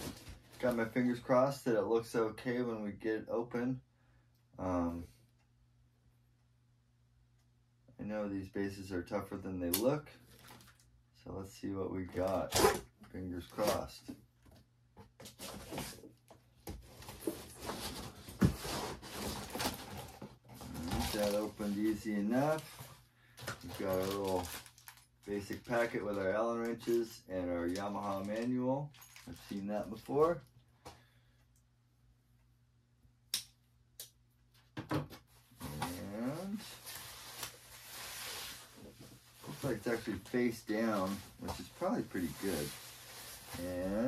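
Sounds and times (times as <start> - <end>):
cardboard rustling and scraping: 15.2 - 23.0, 35.3 - 44.0.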